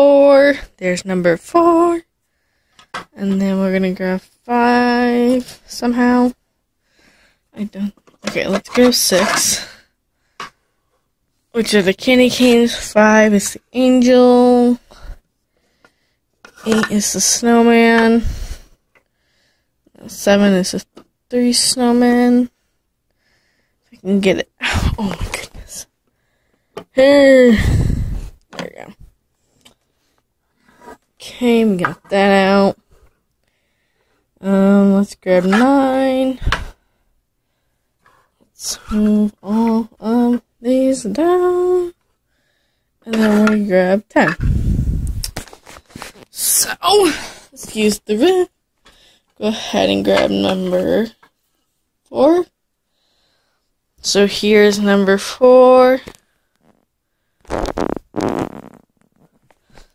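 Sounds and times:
person speaking in creaky rasp: 7.6s - 9.8s, 24.0s - 25.9s, 34.4s - 36.6s, 38.6s - 42.0s, 43.0s - 44.5s, 46.3s - 48.5s, 49.4s - 51.2s.

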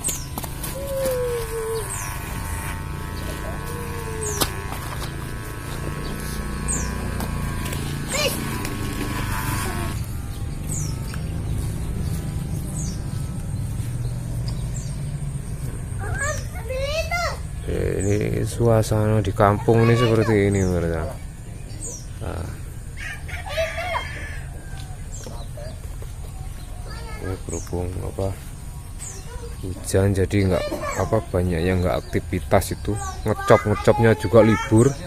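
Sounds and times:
bird chirps: 0.0s - 8.4s, 9.4s - 22.9s, 25.0s - 35.0s
electric hair clipper buzzing: 0.0s - 18.4s, 19.7s - 21.0s.

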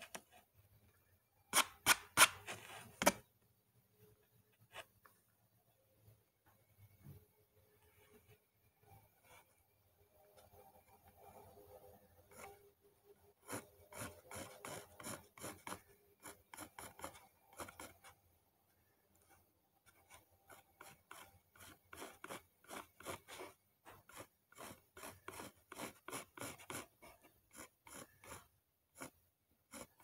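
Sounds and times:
pencil scratching on paper: 11.4s - 12.7s, 13.3s - 18.2s, 19.2s - 30.0s.

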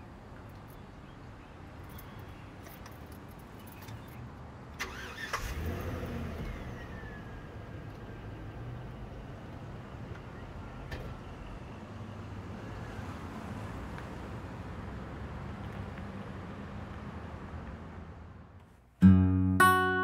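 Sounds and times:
truck engine starting and idling: 4.8s - 11.8s.

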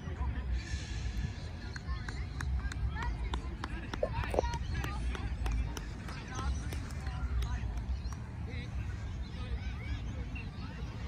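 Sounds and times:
distant shouts and chatter: 0.0s - 11.0s.

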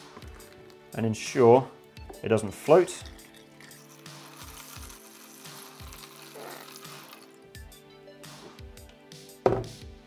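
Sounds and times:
quiet background music: 0.0s - 10.0s
water pouring into plastic tub: 3.7s - 7.5s.

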